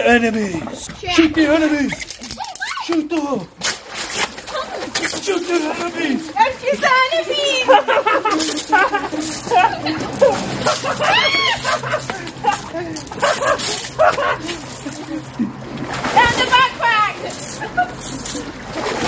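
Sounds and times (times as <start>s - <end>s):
water splashing and sloshing: 0.0s - 19.0s
water pistols squirting: 1.8s - 19.0s
children and adults shouting: 9.6s - 12.8s
long yell: 10.2s - 13.0s.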